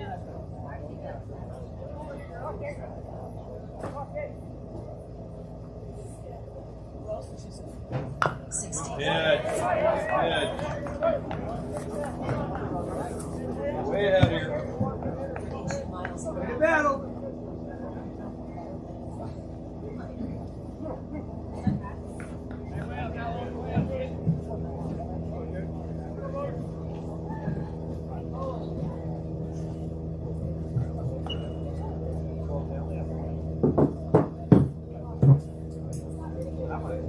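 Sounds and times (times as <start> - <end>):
distant voices: 0.0 - 37.0
steady low hum: 0.0 - 37.0.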